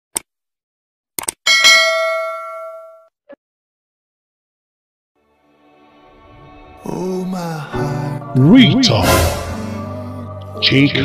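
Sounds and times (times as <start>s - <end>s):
sharp clicks: 1.2s - 1.4s
bell-like ding: 1.5s - 3.1s.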